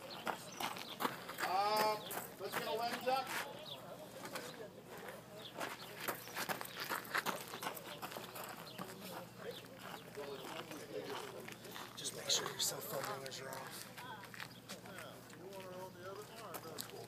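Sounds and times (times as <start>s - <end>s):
people talking indistinctly: 0.0s - 17.0s.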